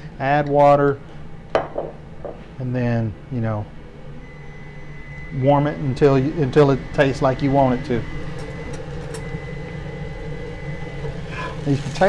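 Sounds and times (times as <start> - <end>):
low mechanical hum: 0.0 - 12.0
faint high whine: 2.6 - 12.0.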